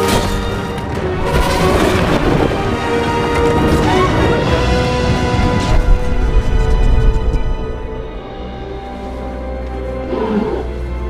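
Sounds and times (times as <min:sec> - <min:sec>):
dark orchestral music: 0:00.0 - 0:11.0
deep animal bellow: 0:10.0 - 0:10.8.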